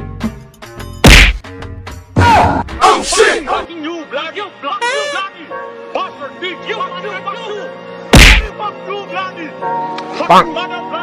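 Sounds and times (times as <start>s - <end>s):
background music: 0.0s - 11.0s
loud whack: 1.0s - 1.4s, 8.1s - 8.5s.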